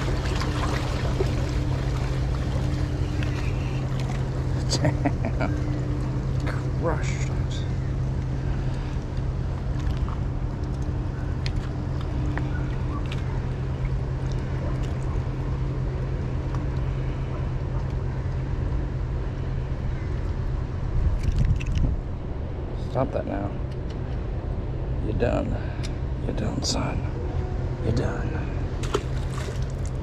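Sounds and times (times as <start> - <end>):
low motor hum: 0.0 - 30.0.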